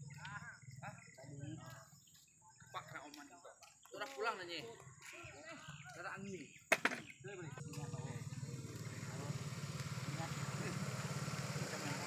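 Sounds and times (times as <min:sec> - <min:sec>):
faint distant voices: 0:00.0 - 0:12.0
small engine idling: 0:07.5 - 0:12.0.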